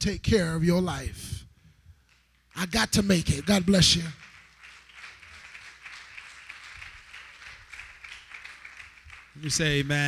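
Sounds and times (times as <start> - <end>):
person preaching: 0.0 - 1.5, 2.6 - 4.2
congregation applauding: 2.1 - 10.0.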